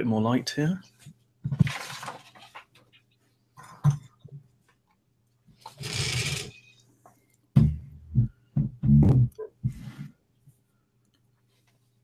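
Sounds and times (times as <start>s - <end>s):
microphone handling bumps and rubs: 8.6s - 10.1s.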